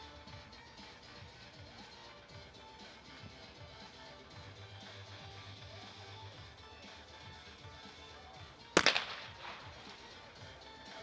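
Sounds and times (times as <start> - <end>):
shotgun shot with echo: 8.8 - 10.2.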